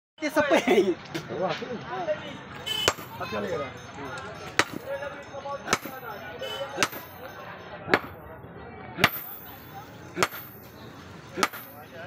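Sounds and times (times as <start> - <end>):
sledgehammer striking iron on anvil: 4.6 - 4.9, 5.7 - 6.1, 6.7 - 7.2, 7.9 - 8.2, 9.0 - 9.5, 10.2 - 10.6, 11.4 - 11.9.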